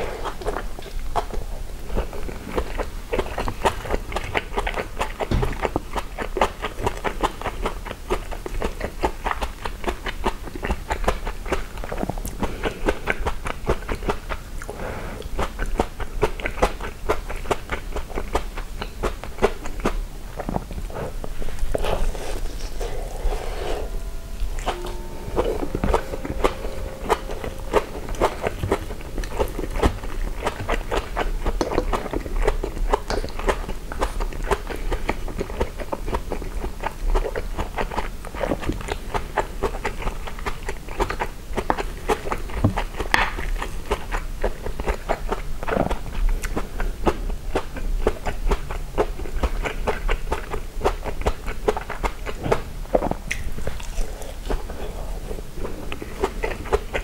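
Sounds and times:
chewing with mouth clicks: 0:00.0 - 0:23.2, 0:29.3 - 0:57.0.

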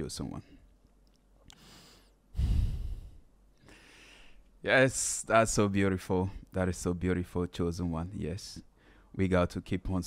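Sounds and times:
man breathing close to microphone: 0:01.5 - 0:04.5.

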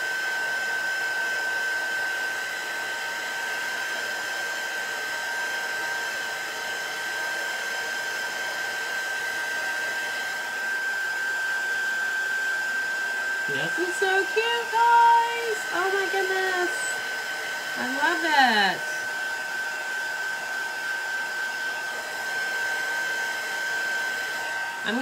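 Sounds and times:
heat tool blowing with high whine: 0:00.0 - 0:25.0.

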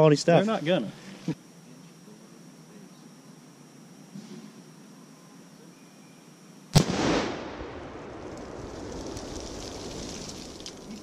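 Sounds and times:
explosive target blast: 0:06.8 - 0:09.4
rumbling echo: 0:06.8 - 0:09.4.

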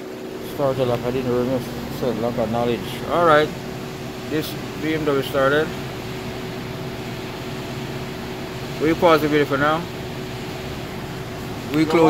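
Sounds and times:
person speaking: 0:00.5 - 0:03.6, 0:11.7 - 0:12.0.

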